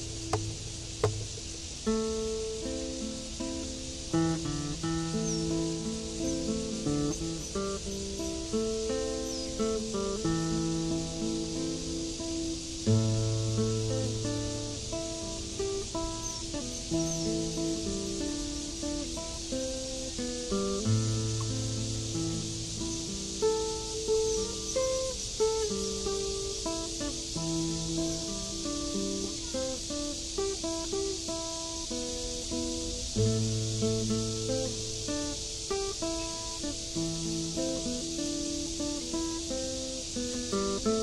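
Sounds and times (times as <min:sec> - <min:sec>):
fingerstyle acoustic guitar: 0:00.0 - 0:41.0
steady high hiss: 0:00.0 - 0:41.0.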